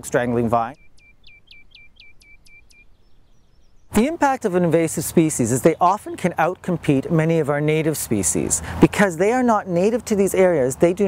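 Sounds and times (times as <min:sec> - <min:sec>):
songbird trilling chirps: 0:00.6 - 0:06.3.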